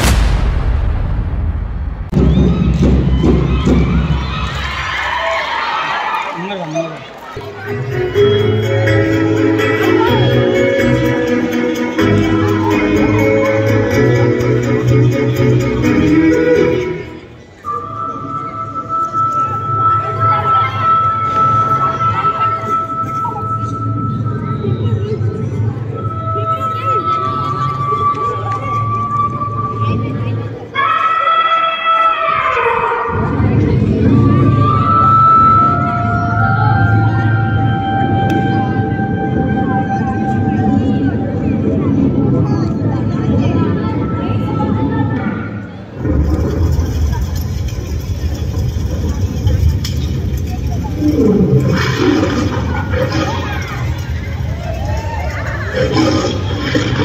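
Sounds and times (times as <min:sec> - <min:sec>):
low hum: 0:00.0 - 0:03.6
low outdoor rumble: 0:00.0 - 0:04.4
children's voices: 0:19.4 - 0:49.5, 0:50.4 - 0:57.0.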